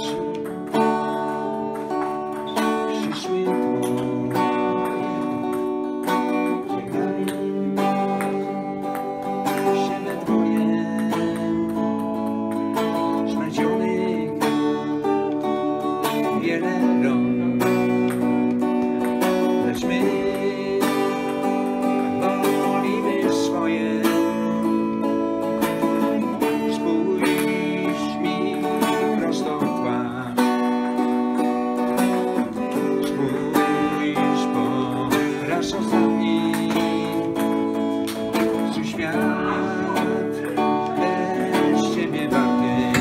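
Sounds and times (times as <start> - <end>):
electric guitar melody: 0.0 - 43.0.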